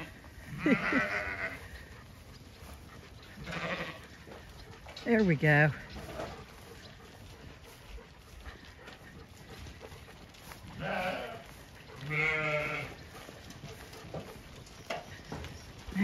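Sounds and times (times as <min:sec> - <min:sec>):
sheep bleating: 0:00.0 - 0:01.8, 0:03.4 - 0:04.2, 0:10.7 - 0:13.0.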